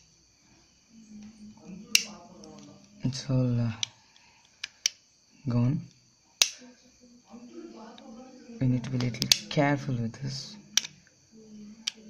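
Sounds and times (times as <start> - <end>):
plastic tool click: 2.0 - 2.6.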